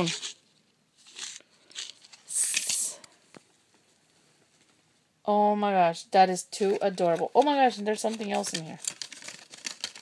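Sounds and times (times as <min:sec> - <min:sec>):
packaging rustling and crinkling: 0:06.6 - 0:10.0.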